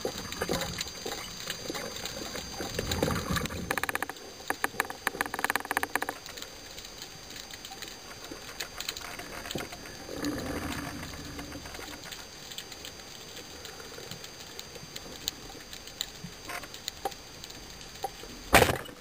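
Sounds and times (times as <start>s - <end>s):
underwater clicks and crackles: 0.0s - 19.0s.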